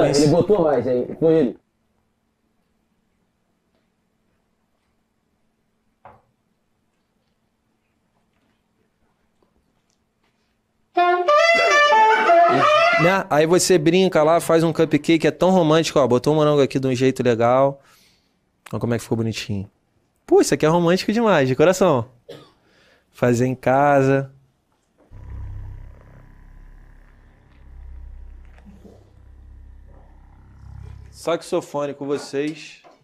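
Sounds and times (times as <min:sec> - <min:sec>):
saxophone melody: 0:11.0 - 0:13.1, 0:25.1 - 0:31.4
deep buzzing rumble: 0:25.1 - 0:31.9.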